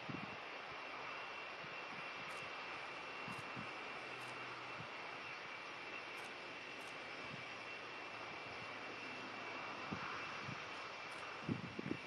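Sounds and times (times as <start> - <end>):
jet engines running: 0.0 - 12.0.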